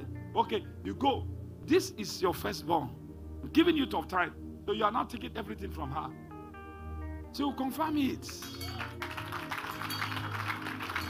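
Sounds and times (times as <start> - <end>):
music with held low notes: 0.0 - 11.0
crowd clapping: 8.3 - 11.0.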